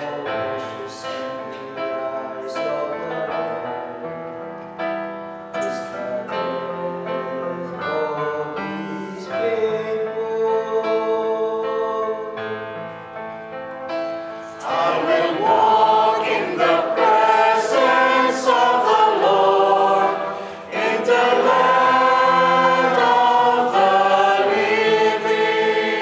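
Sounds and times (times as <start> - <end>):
sustained keyboard chords: 12.4 - 26.0
church choir singing: 14.0 - 26.0.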